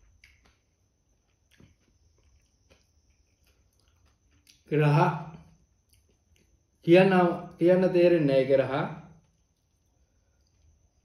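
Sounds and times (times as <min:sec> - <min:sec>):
soft eating clicks: 0:00.0 - 0:04.7, 0:05.4 - 0:06.7.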